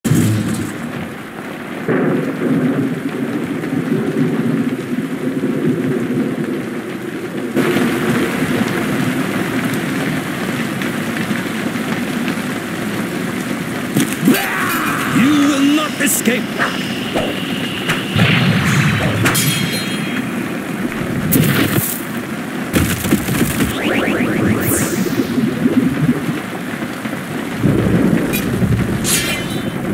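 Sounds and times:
heavy rain falling: 0.0s - 29.9s
thunder rumble: 15.9s - 29.9s
heavy impacts: 16.4s - 21.3s.

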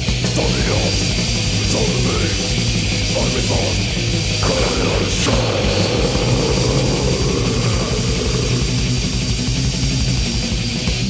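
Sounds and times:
fast distorted band music: 0.0s - 11.0s.

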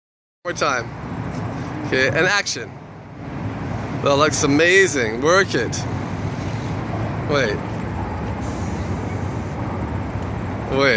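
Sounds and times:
hiss: 8.4s - 9.6s.

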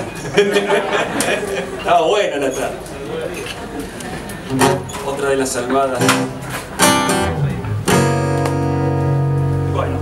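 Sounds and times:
acoustic guitar chord strummed: 6.0s - 10.0s.

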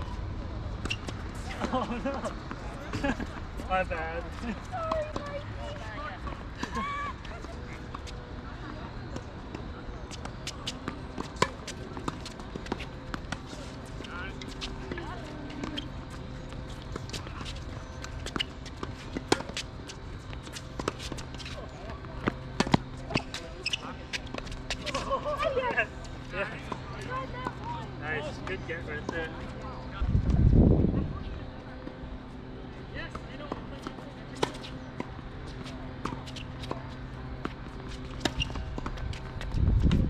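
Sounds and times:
voices: 0.0s - 39.4s
tennis balls bouncing and struck: 7.4s - 27.8s, 33.1s - 40.0s.

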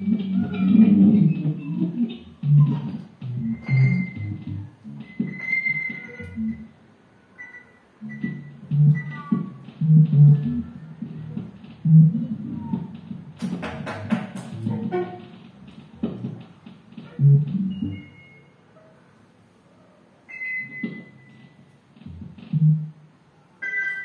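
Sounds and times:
low double bass notes: 0.0s - 6.7s, 8.0s - 13.4s, 14.4s - 18.2s, 22.0s - 23.0s
sliding high guitar tones: 0.0s - 6.7s.

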